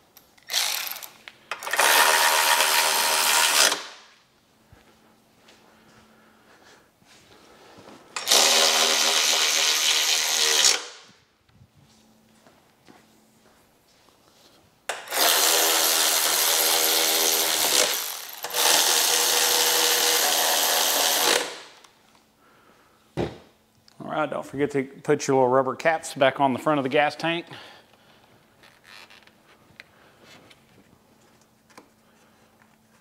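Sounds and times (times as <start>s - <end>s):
electric ratchet running: 0.4s - 4.0s, 8.2s - 10.9s, 14.9s - 21.8s.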